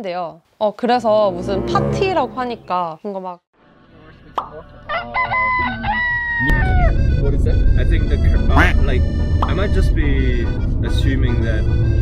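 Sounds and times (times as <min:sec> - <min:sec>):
rooster crowing: 0:04.8 - 0:07.0.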